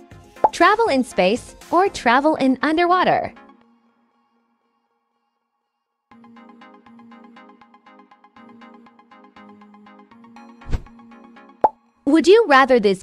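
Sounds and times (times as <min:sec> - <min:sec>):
electronic ticking countdown music: 0:06.1 - 0:12.1.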